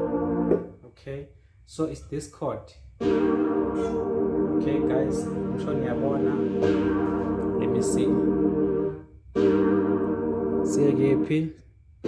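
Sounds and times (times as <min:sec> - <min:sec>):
keyboard playing held chord: 0:00.0 - 0:00.7, 0:03.0 - 0:11.5.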